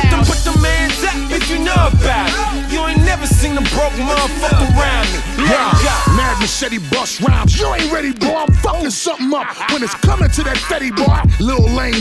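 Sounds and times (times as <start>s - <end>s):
rapping over a beat: 0.0s - 12.0s
deep sustained bass: 0.1s - 6.7s
kick drums: 1.8s - 2.3s, 4.5s - 6.5s, 7.3s - 7.7s, 8.5s - 8.8s, 11.1s - 12.0s.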